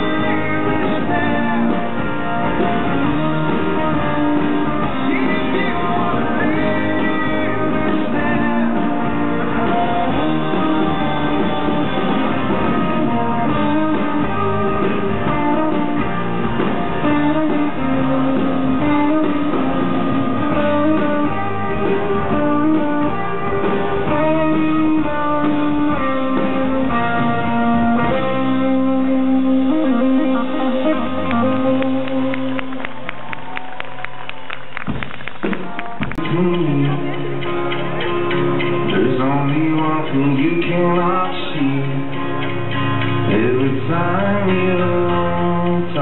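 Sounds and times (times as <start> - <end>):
acoustic and electric guitars: 0.0 - 46.0.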